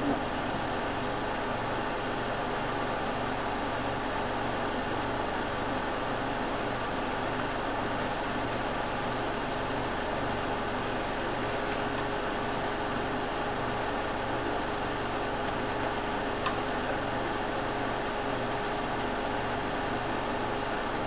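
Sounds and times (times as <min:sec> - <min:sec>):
background hum and hiss: 0:00.0 - 0:21.0.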